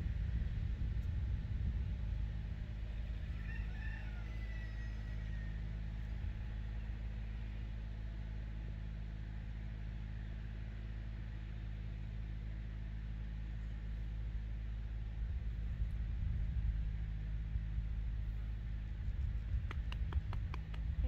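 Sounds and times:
low rumble: 0:00.0 - 0:03.8, 0:04.5 - 0:08.5, 0:13.5 - 0:21.0
rooster crowing: 0:03.2 - 0:05.8.

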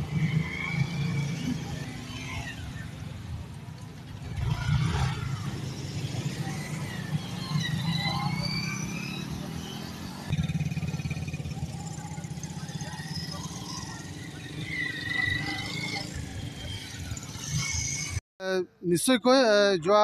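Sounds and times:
small motorcycles riding past: 0:00.0 - 0:18.2.

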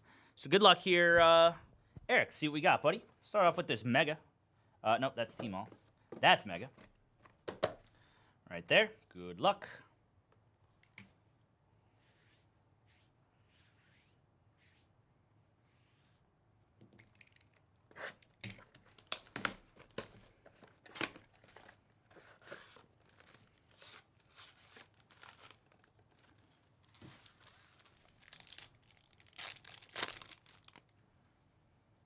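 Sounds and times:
wrappers ripping and crinkling: 0:21.1 - 0:31.0.

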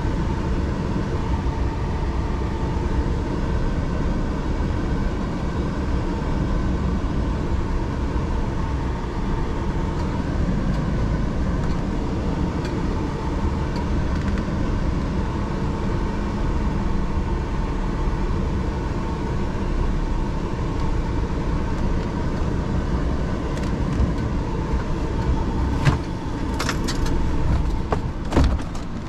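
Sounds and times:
truck engine rumbling: 0:00.0 - 0:29.0.

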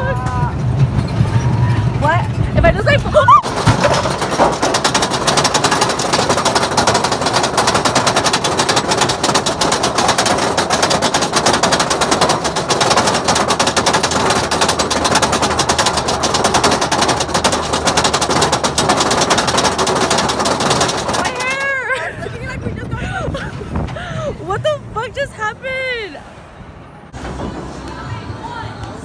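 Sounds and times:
roller coaster lift chain clicking: 0:00.0 - 0:24.3, 0:27.1 - 0:29.0.

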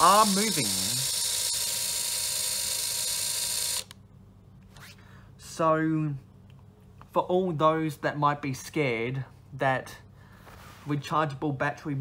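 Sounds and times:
toy train motor whirring: 0:00.0 - 0:04.0.

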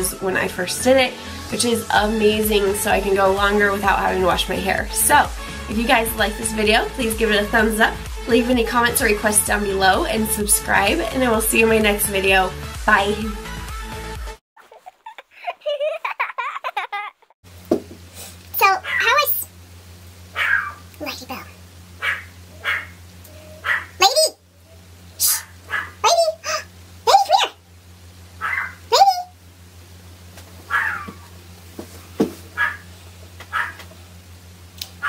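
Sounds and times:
low electrical hum: 0:00.0 - 0:13.6, 0:14.7 - 0:35.0
dog whining and yelping: 0:20.4 - 0:20.8, 0:22.0 - 0:24.1, 0:25.3 - 0:26.6, 0:28.4 - 0:29.3, 0:30.7 - 0:31.3, 0:32.6 - 0:32.8, 0:33.5 - 0:33.8.

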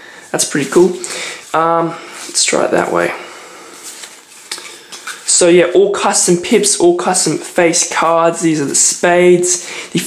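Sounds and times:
playing cards rustling: 0:03.7 - 0:09.6.

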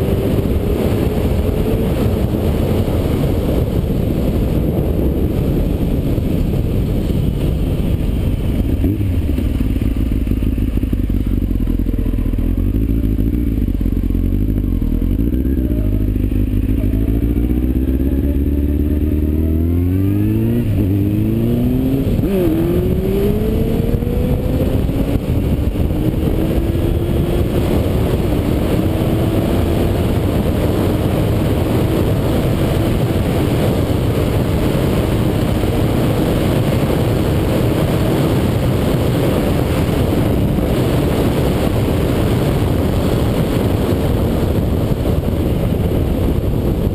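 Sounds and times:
motorcycle engine accelerating: 0:00.0 - 0:46.9
wind noise on microphone: 0:00.0 - 0:46.9.

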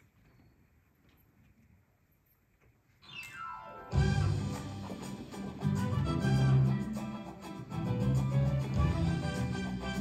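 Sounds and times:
band with bass and drums: 0:03.9 - 0:10.0.

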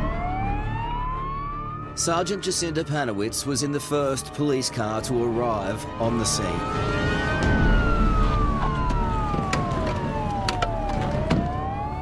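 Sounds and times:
police siren wailing: 0:00.0 - 0:12.0.

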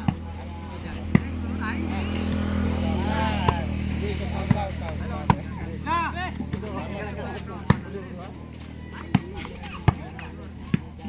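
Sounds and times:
low motor hum: 0:00.0 - 0:11.0
players shouting: 0:00.0 - 0:11.0.

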